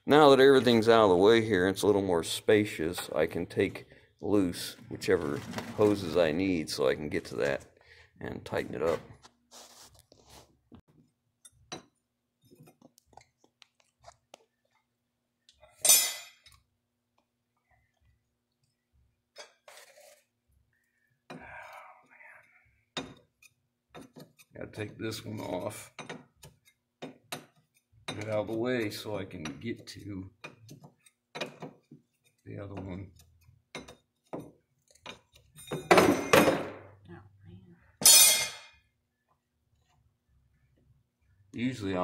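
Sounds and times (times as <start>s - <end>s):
tools clanking on metal: 32.6s - 36.7s, 38.0s - 38.8s.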